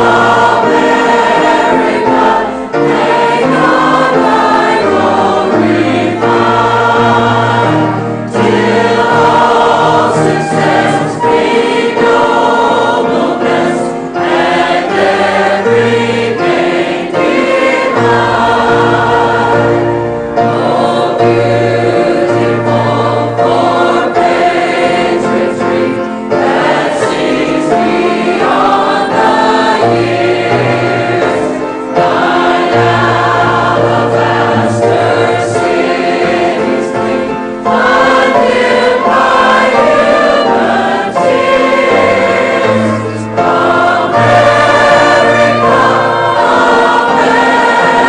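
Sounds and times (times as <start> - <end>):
mixed choir singing sustained notes: 0.0 - 48.0.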